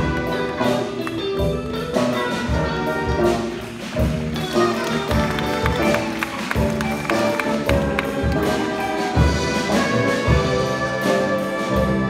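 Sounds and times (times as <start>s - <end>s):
jazz big band playing: 0.0s - 12.0s.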